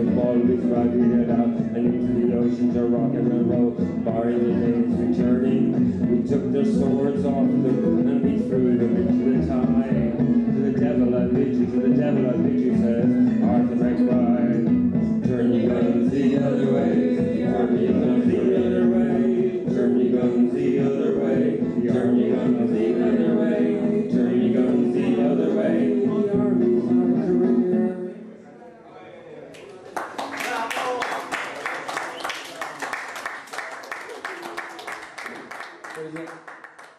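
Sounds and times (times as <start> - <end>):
guitar playing folk tune: 0.0 - 28.0.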